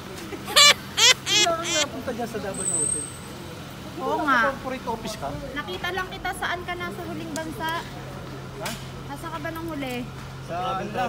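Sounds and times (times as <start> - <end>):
high-pitched exclamations or laughs: 0.6 - 1.9
people talking: 0.6 - 1.9.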